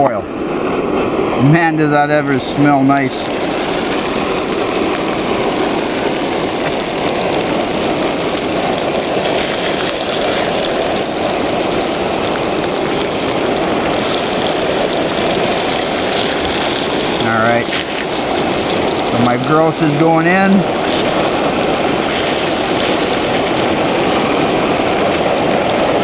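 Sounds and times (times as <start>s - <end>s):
camp stove burning: 1.1s - 26.0s
meat sizzling in hot oil: 2.2s - 26.0s.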